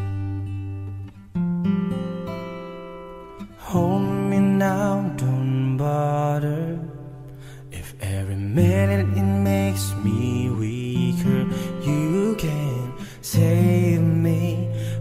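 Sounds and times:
slow acoustic guitar music: 0.0 - 15.0.

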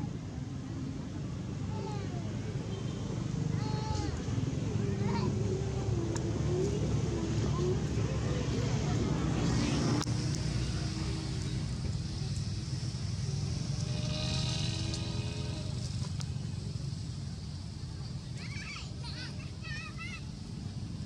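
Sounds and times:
vehicle engine rumbling: 0.0 - 21.0
vehicle passing: 4.1 - 17.2.

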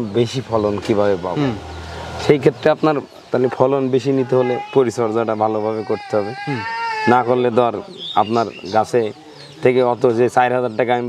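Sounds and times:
man talking: 0.0 - 11.0
high-pitched animal call: 4.2 - 8.4.

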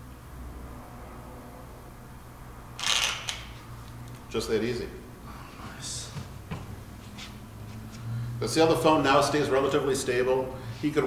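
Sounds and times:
phone gimbal click and rattle: 2.8 - 3.6.

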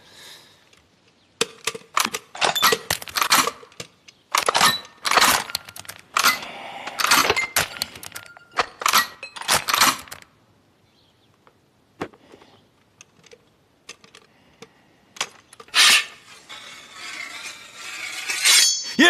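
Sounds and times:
metallic clinks and clattering: 1.6 - 10.2.

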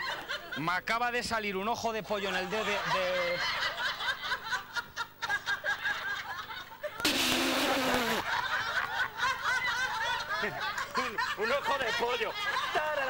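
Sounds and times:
people giggling: 2.4 - 13.0.

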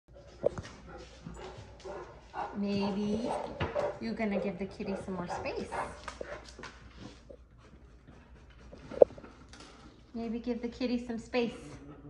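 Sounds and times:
dog barking: 0.4 - 6.0.

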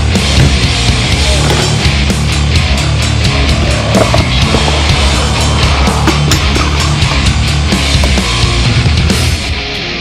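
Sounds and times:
loud rock music: 0.0 - 10.0.

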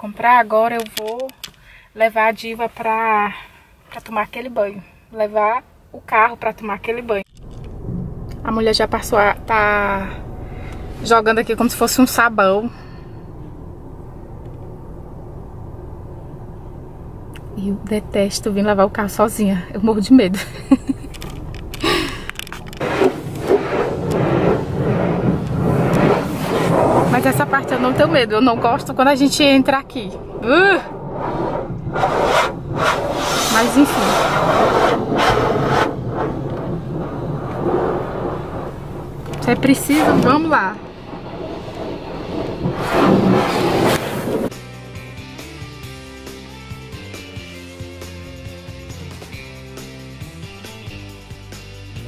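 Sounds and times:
car wash rushing noise: 7.5 - 44.5
background music: 44.5 - 52.0.

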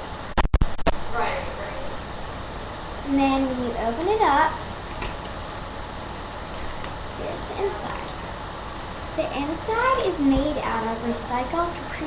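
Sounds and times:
low webcam hum: 0.0 - 12.0.

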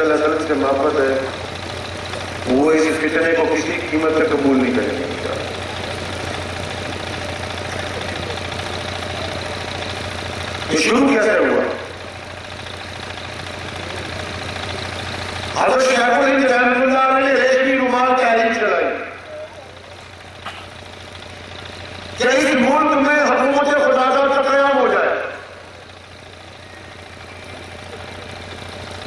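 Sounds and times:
man speaking over amplification: 0.0 - 1.4, 2.4 - 5.6, 10.6 - 12.0, 15.5 - 19.2, 22.2 - 25.5
public address system hum: 0.0 - 12.4, 15.5 - 20.7.

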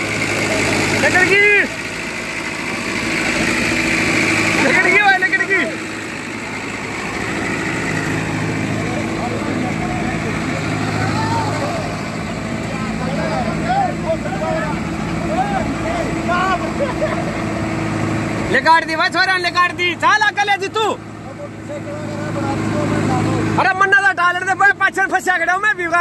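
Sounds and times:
car engine running: 0.0 - 26.0
men shouting: 0.2 - 26.0.

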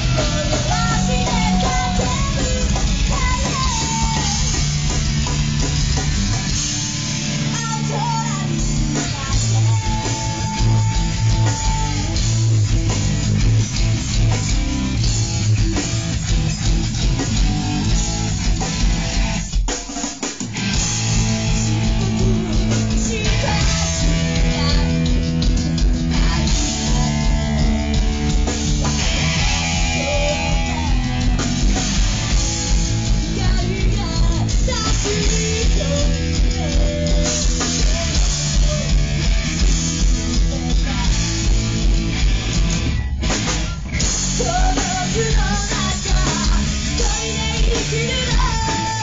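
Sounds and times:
bass guitar: 0.0 - 49.0
distorted electric guitar: 0.0 - 49.0
drum kit: 0.0 - 49.0.

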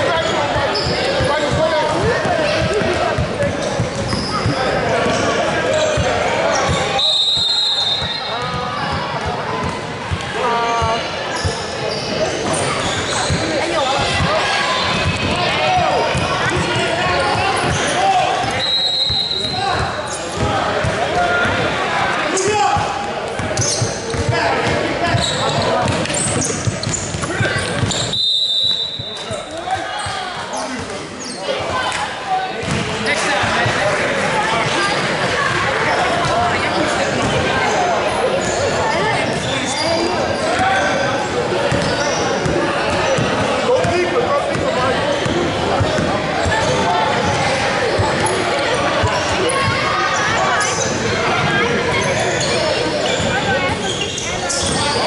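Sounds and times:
people shouting in a gym: 0.0 - 55.0.

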